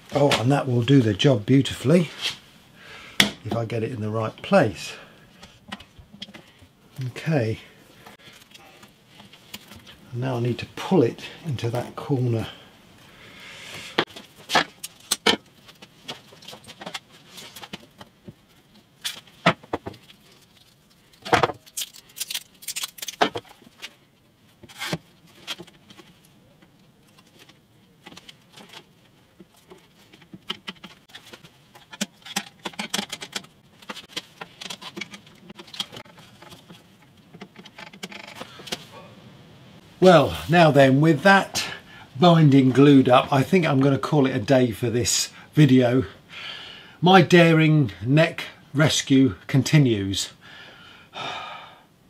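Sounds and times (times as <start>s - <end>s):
plastic clamps clicking and rattling: 30.1s - 36.8s.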